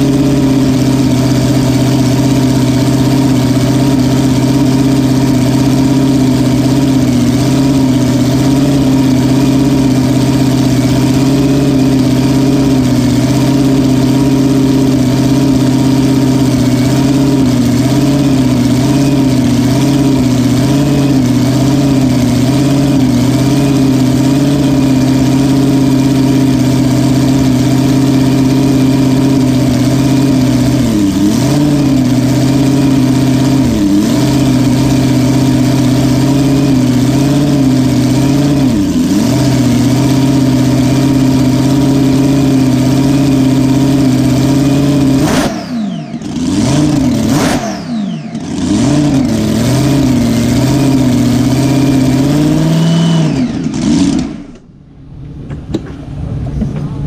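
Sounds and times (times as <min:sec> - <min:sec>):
race engine idling and revving: 0:00.0 - 0:57.0.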